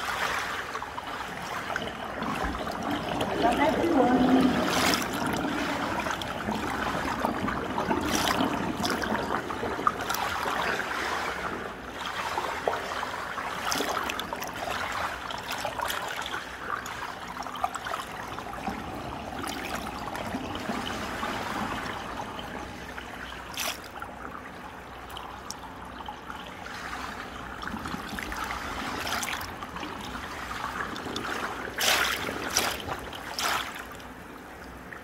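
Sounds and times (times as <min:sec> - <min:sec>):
small water splashes: 0:00.0 - 0:35.0
water running and lapping: 0:00.0 - 0:35.0.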